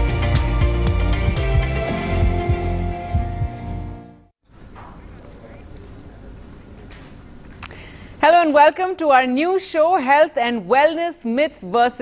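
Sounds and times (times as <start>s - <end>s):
theme music with thumping beats: 0.0s - 4.2s.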